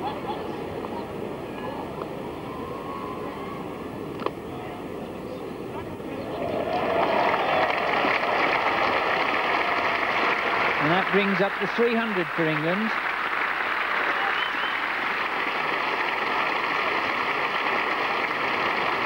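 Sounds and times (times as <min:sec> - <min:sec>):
crowd applause and shouts: 0:06.2 - 0:19.0.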